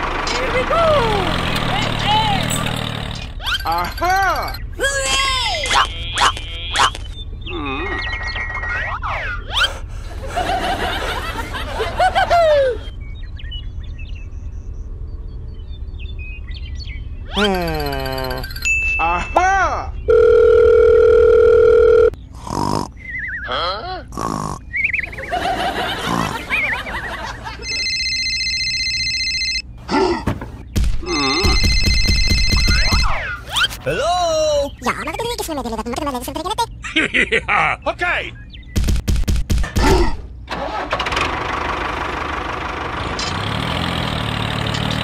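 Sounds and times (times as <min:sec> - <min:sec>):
squeaky sped-up cartoon voices: 0:03.4 - 0:09.9, 0:17.3 - 0:20.0, 0:22.4 - 0:25.2, 0:32.4 - 0:36.9
comic sound effects: 0:17.3 - 0:18.6, 0:31.0 - 0:34.2
phone ringtone: 0:17.6 - 0:19.0, 0:20.1 - 0:22.2, 0:27.6 - 0:29.7, 0:31.1 - 0:33.1
long steady beep: 0:31.1 - 0:33.1.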